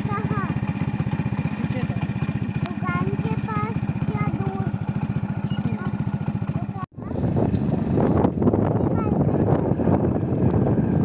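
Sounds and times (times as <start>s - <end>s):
motorcycle engine: 0.0s - 11.0s
wind buffeting microphone: 7.0s - 11.0s.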